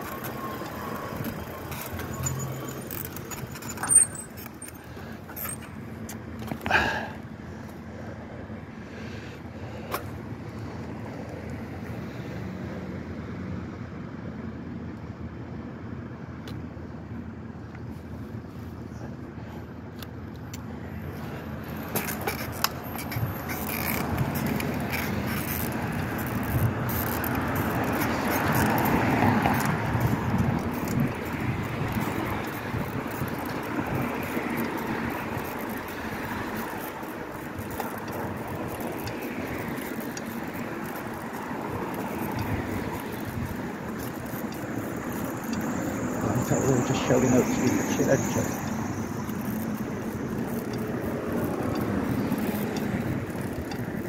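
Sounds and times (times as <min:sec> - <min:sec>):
bicycle rumbling over pavement: 0:00.0 - 0:07.2, 0:21.0 - 0:54.0
street traffic hum: 0:00.0 - 0:54.0.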